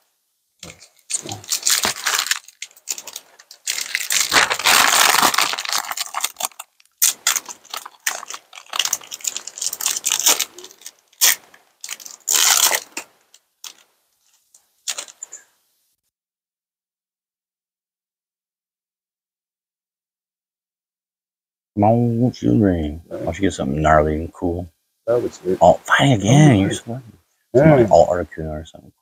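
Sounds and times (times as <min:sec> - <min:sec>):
foil wrapper crinkling and tearing: 0:00.6 - 0:15.3.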